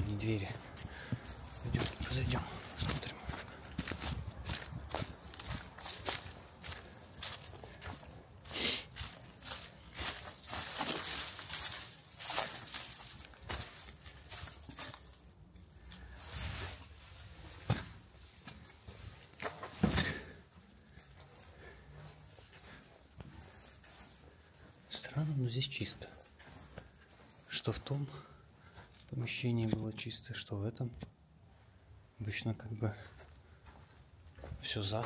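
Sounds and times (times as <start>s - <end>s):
footsteps on dry leaves: 0.0s - 19.4s, 20.2s - 29.4s
footsteps on brick floor: 0.0s - 30.0s, 33.0s - 34.8s.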